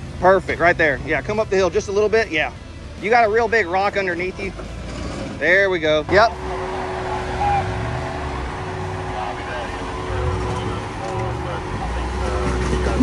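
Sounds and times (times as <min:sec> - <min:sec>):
car engine running low: 0:04.3 - 0:13.0.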